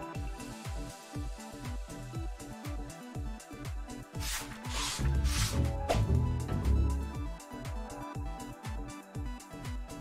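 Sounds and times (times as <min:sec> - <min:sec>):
electronic music with steady beat: 0:00.0 - 0:10.0.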